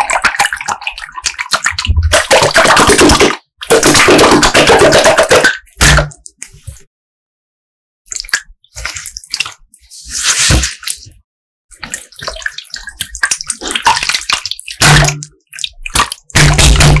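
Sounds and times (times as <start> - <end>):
slime squelching by hand: 8.1 - 17.0.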